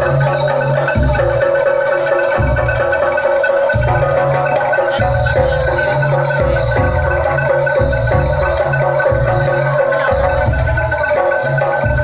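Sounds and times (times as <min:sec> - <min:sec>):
deep heavy drum strokes: 0:00.0 - 0:12.0
metallophones ringing melody: 0:00.0 - 0:12.0.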